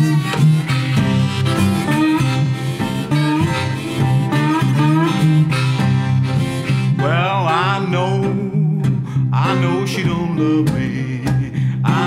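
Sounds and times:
blues harmonica bending notes: 0.0s - 12.0s
guitar bass riff: 0.0s - 12.0s.

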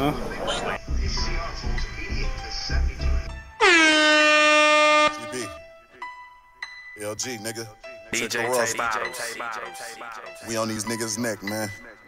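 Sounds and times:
rap music with bass beat: 0.8s - 3.6s, 8.1s - 12.0s
loud air horn blast: 3.6s - 5.6s.

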